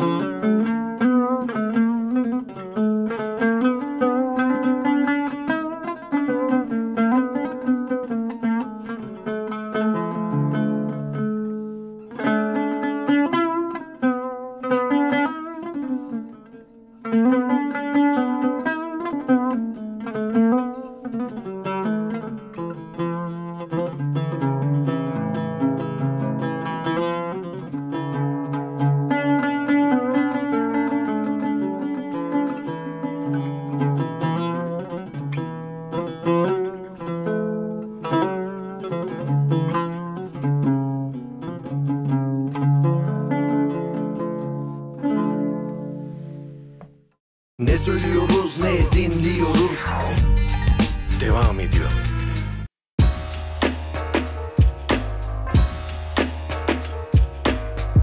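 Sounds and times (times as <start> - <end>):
oud melody: 47.6 - 58.0.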